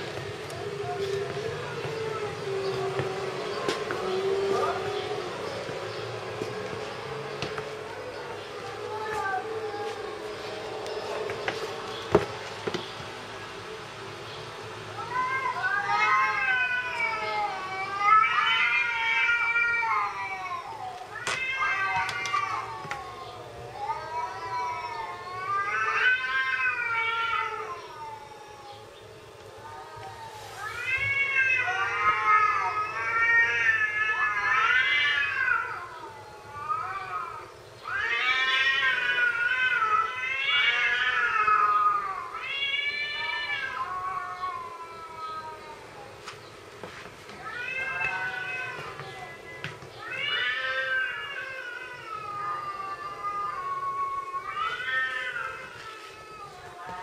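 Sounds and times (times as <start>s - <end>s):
cats meowing and caterwauling: 0.0s - 12.9s, 13.6s - 57.0s.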